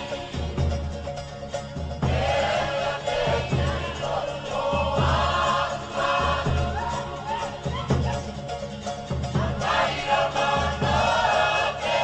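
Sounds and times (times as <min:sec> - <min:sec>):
group singing: 0:00.0 - 0:01.2, 0:02.0 - 0:08.4, 0:09.2 - 0:12.0.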